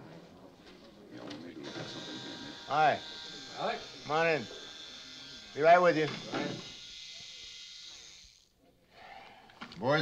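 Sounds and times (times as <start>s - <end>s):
electric razor buzzing: 1.6s - 8.5s.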